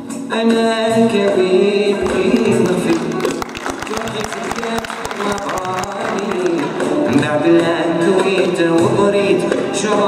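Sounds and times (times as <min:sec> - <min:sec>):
plucked string ensemble music: 0:02.0 - 0:08.4.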